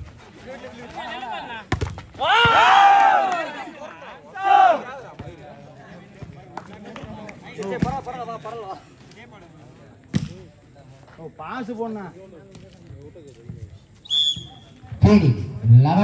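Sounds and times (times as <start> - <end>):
volleyball being struck: 1.7 - 2.7.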